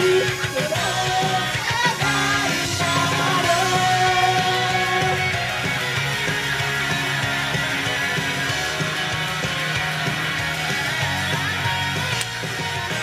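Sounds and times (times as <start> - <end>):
rock pop song over sound system: 0.0 - 13.0.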